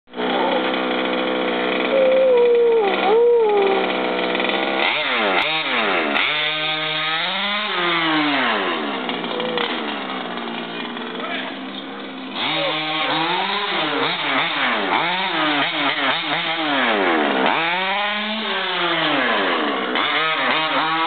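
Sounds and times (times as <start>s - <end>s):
two-stroke engine idling and revving: 0.1s - 21.0s
dog whining: 1.9s - 3.9s.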